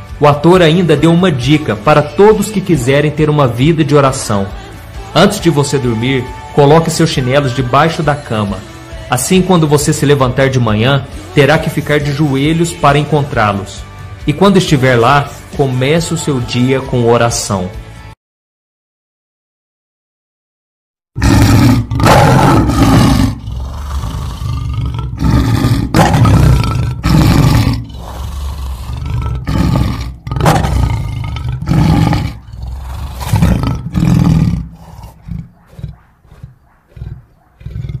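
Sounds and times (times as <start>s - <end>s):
lion grunting: 21.2s - 38.0s
lion roaring: 21.2s - 38.0s.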